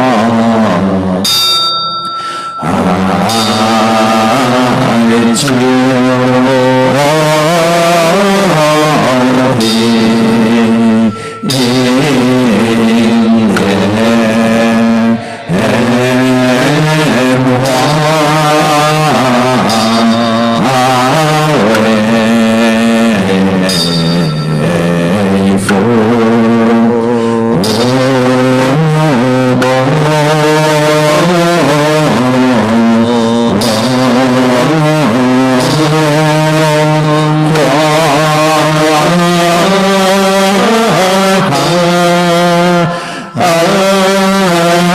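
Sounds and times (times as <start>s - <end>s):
group of voices chanting: 2.6s - 22.1s.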